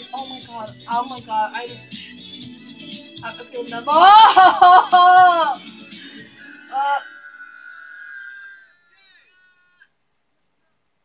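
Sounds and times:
woman squealing: 3.8 - 5.6, 6.7 - 9.1
woman whimpering: 3.8 - 5.7, 6.7 - 7.4.

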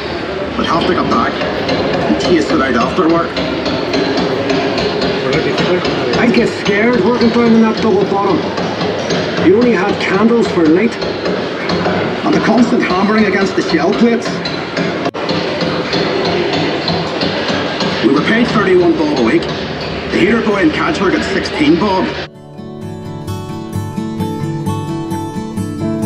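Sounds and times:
background music: 0.0 - 26.0
music from sound system: 22.2 - 26.0.

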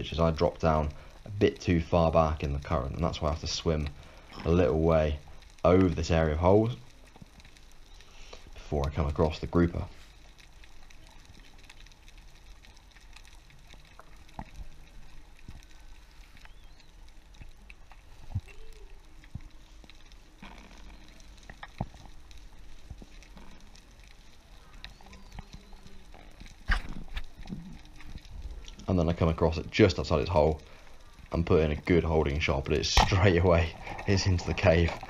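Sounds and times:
sharp underwater clicks: 6.6 - 35.0.

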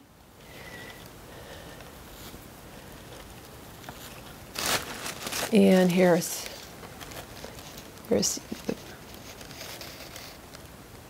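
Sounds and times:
fiber rustling: 0.4 - 10.7.

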